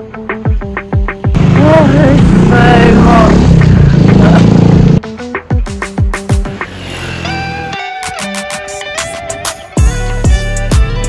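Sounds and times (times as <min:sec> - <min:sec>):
upbeat music with plucked guitar: 0:00.0 - 0:06.6, 0:07.4 - 0:11.0
person vocalizing over noisy music: 0:01.4 - 0:04.8.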